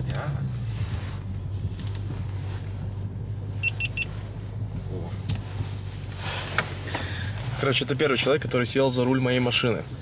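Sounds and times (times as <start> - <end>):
car engine low drone: 0.0 - 10.0
high-pitched beeps: 3.6 - 4.1.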